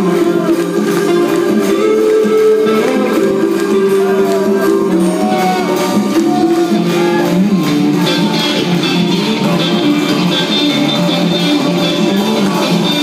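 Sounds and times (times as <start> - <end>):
rock band playing live: 0.0 - 13.0.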